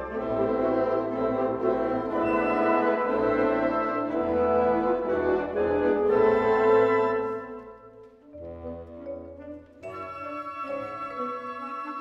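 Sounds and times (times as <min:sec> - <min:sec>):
wind band sustained brass chord: 0:00.0 - 0:07.7.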